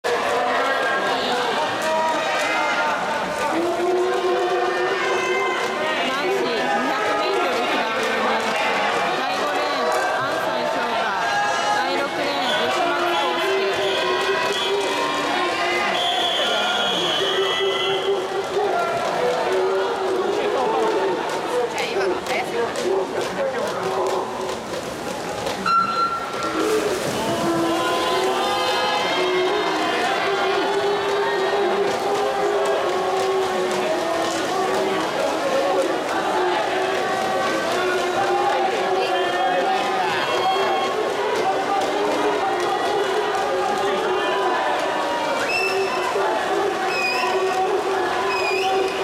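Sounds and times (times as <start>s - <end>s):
crowd talking and calling out: 0.0s - 49.0s
pool hall murmur: 0.0s - 49.0s.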